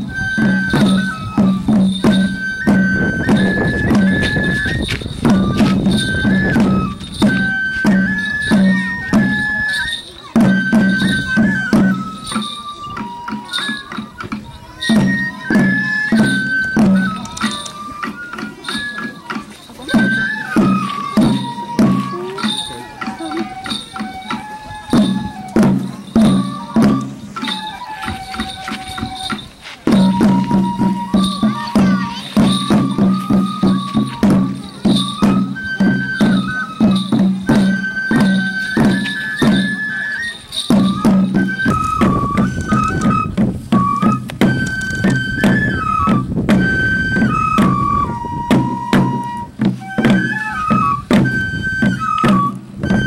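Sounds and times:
bamboo flute high notes: 0:00.0 - 0:53.0
regular drum beats: 0:00.0 - 0:53.0.

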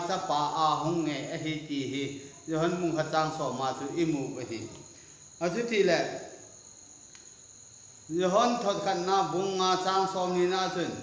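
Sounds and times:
man speaking: 0:00.0 - 0:04.8, 0:05.4 - 0:06.3, 0:08.1 - 0:11.0
light hiss: 0:00.0 - 0:11.0.

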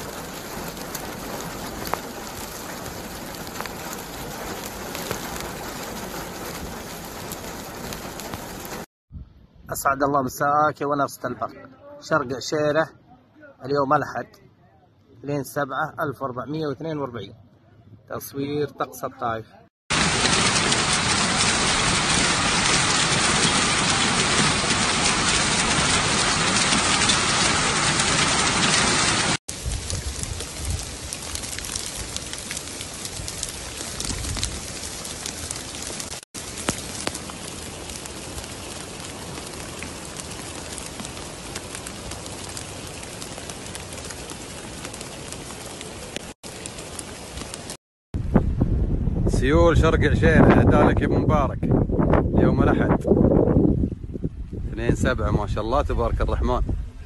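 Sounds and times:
heavy rain and hail: 0:00.0 - 0:08.9, 0:19.9 - 0:47.8.

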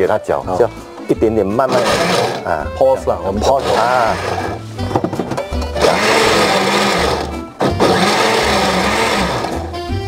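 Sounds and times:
blender chopping: 0:01.6 - 0:02.5, 0:03.6 - 0:04.6, 0:05.8 - 0:09.7.

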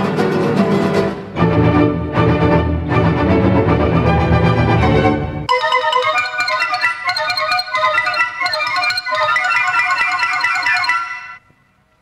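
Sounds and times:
orchestra bright ringing notes: 0:05.4 - 0:11.4.

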